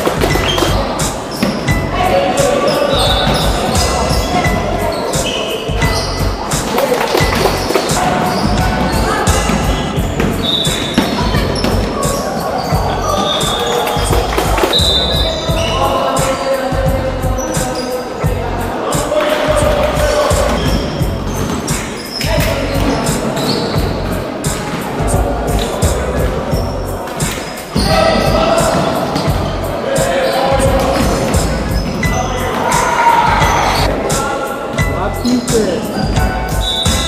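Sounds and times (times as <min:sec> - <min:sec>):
background music: 0:00.0 - 0:37.0.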